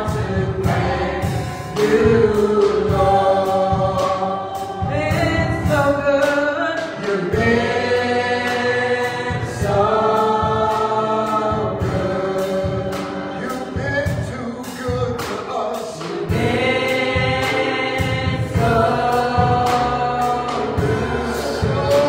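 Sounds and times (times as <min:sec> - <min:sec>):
choir singing in harmony: 0:00.0 - 0:14.8, 0:15.7 - 0:22.0
drums keeping a steady beat: 0:00.0 - 0:22.0.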